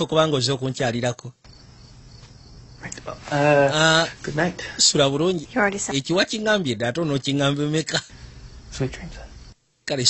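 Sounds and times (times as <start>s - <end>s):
high hiss of ambience: 0.4s - 10.0s.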